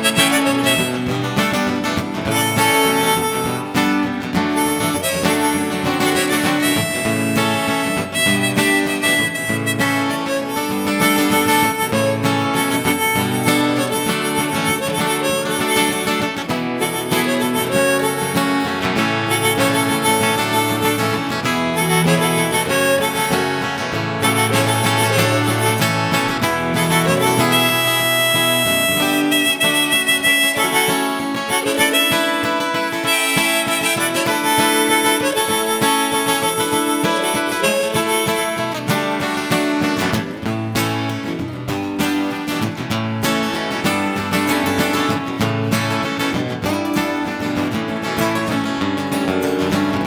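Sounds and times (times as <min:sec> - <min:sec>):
acoustic guitars and bass: 0:00.0 - 0:50.0
harmonica playing lead: 0:00.0 - 0:50.0.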